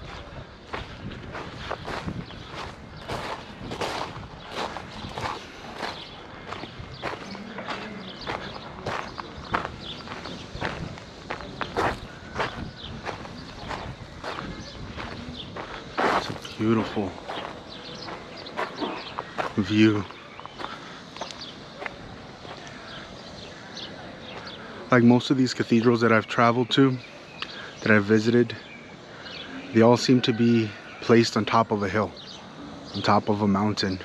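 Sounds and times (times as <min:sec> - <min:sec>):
footsteps on gravel: 0:00.0 - 0:24.7.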